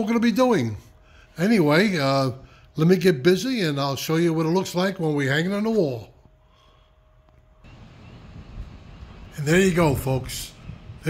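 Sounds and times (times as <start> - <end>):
light steady hum: 0.0 - 11.0
low rumbling noise: 7.5 - 11.0.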